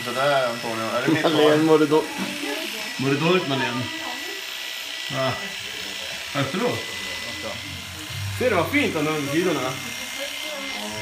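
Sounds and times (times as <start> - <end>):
electric hair clippers humming: 0.0 - 11.0.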